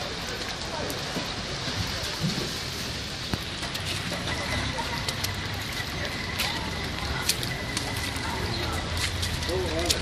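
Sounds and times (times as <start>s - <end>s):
faint voices: 0.0s - 10.0s
street ambience hiss: 0.0s - 10.0s.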